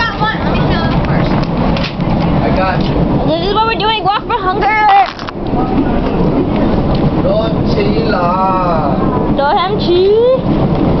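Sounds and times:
loud steady rumbling: 0.0s - 11.0s.

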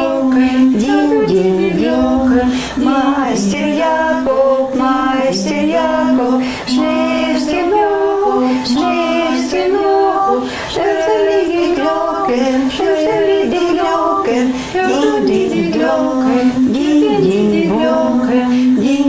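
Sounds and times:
women singing unaccompanied: 0.0s - 19.0s.

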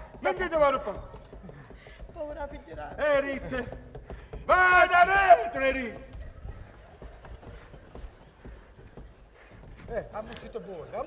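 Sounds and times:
person speaking: 0.0s - 6.4s
footsteps on wooden stage: 0.0s - 11.0s.

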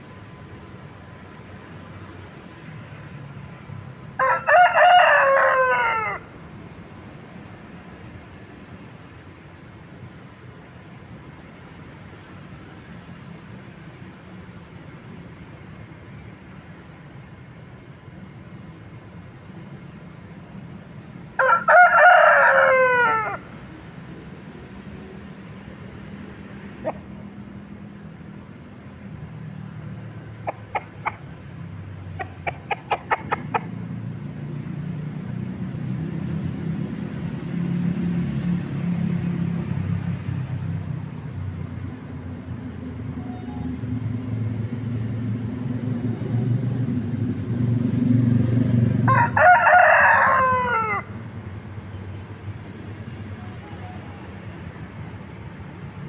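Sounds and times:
rooster crowing: 4.2s - 6.3s, 21.4s - 23.5s, 49.0s - 51.2s.

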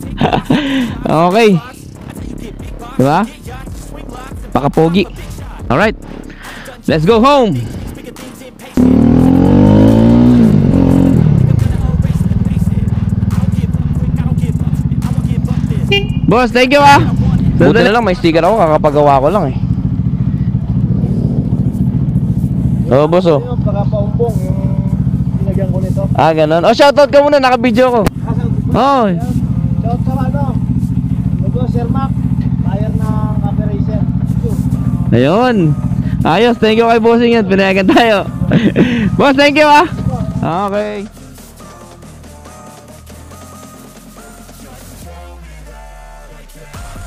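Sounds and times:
motorcycle engine pulling away: 8.7s - 15.9s, 16.9s - 26.2s, 27.8s - 36.7s.

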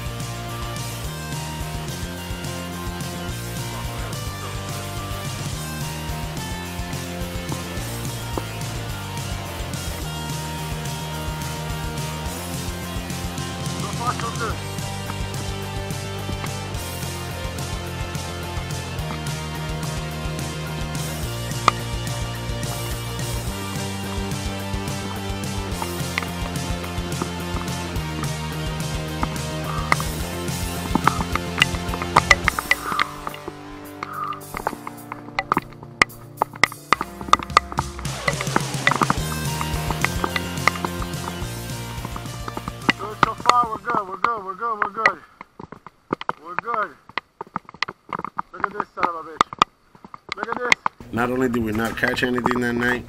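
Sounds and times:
background music with bass: 0.0s - 44.5s, 51.0s - 53.0s
sharp percussive hits: 1.0s - 44.2s
person speaking: 13.6s - 14.7s, 37.1s - 45.4s, 46.4s - 47.1s, 50.4s - 53.0s.

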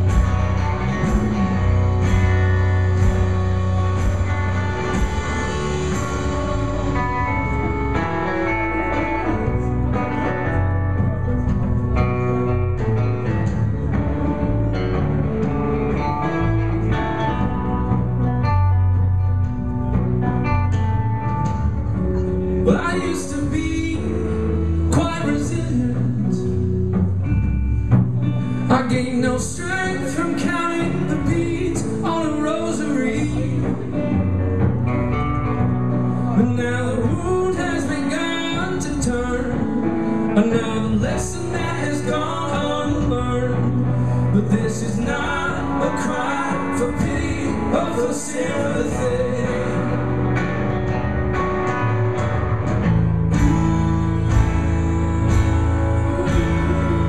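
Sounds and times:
guitars picked and strummed: 0.0s - 57.0s
sustained low bass notes: 0.0s - 57.0s.

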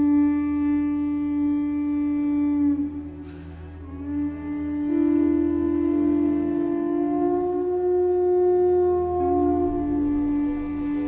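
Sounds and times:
seashell horn note: 0.0s - 11.0s.

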